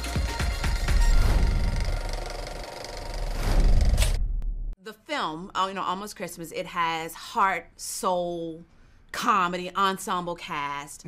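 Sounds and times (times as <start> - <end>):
noisy electronic sound texture: 0.7 - 4.2.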